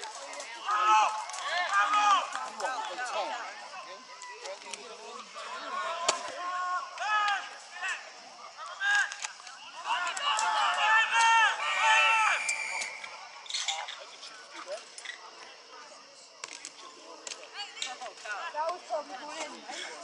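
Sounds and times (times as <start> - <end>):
voices shouting loudly: 0.0 - 16.1, 16.7 - 20.0
scattered calls and chatter: 0.0 - 20.0.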